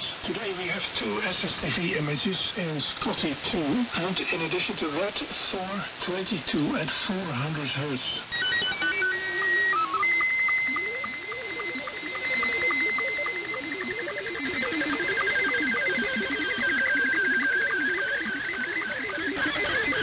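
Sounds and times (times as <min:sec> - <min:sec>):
low warbling data tones: 0:00.0 - 0:20.0
radio band noise: 0:00.0 - 0:20.0
stepped digital beeps: 0:06.8 - 0:20.0
high whistle with sync ticks: 0:08.3 - 0:20.0.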